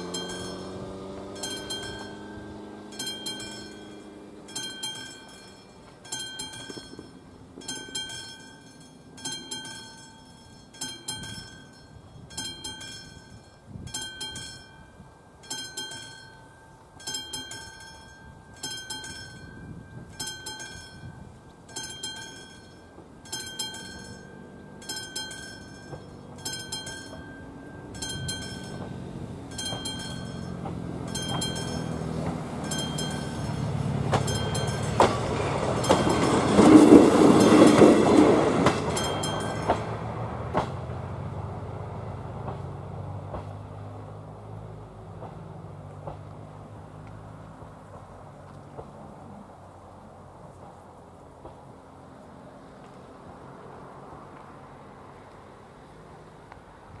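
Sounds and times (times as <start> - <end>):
level crossing bell ringing: 0.0 - 38.0, 38.7 - 40.0
diesel railcar passing: 0.0 - 57.0.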